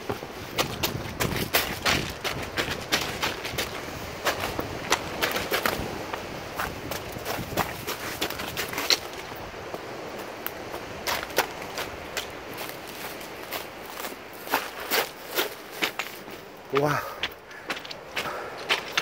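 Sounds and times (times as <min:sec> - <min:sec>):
footsteps on pebbles: 0:00.0 - 0:19.0.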